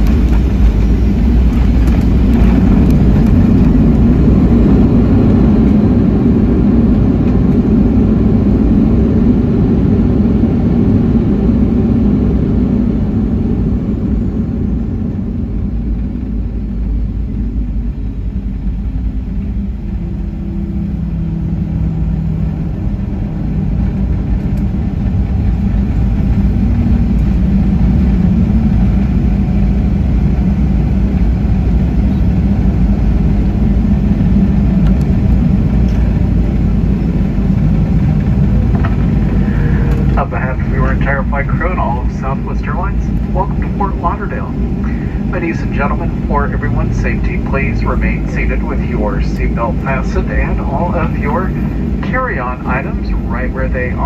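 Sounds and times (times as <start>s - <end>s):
airliner cabin engine rumble: 0.0s - 54.0s.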